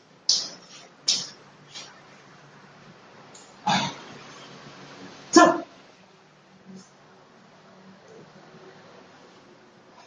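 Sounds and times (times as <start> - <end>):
faint room noise: 0.0 - 10.0
man grunting: 3.7 - 4.0.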